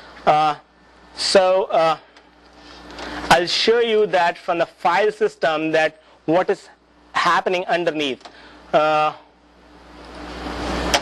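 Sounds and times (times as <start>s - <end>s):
fan-like room noise: 0.0s - 11.0s.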